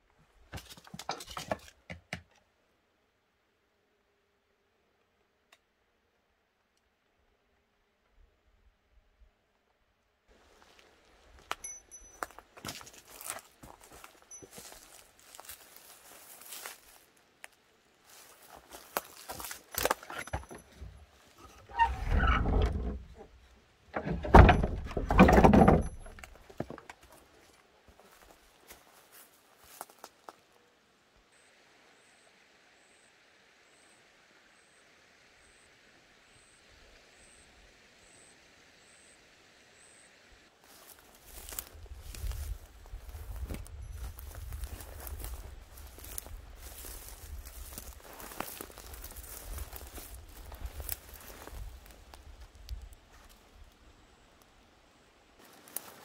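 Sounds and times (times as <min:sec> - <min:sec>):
faint steady hiss: 0:02.3 - 0:24.4, 0:25.8 - 0:56.0
rough rumbling noises: 0:19.9 - 0:26.7, 0:41.3 - 0:52.8
wooden door latch clinking: 0:24.0 - 0:26.3.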